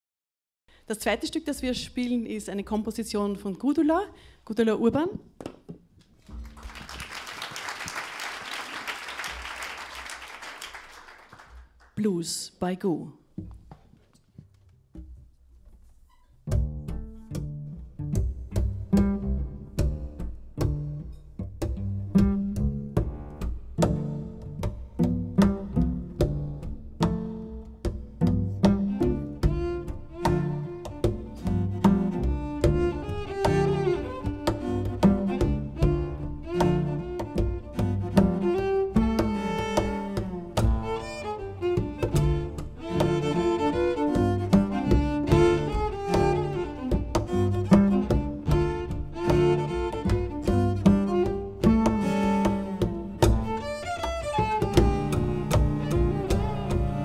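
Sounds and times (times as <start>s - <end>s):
cello quartet playing blues: 16.4s - 57.0s.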